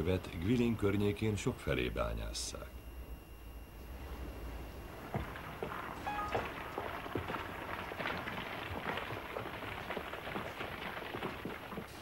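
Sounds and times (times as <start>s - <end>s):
rocks clattering and knocking: 6.4s - 12.0s.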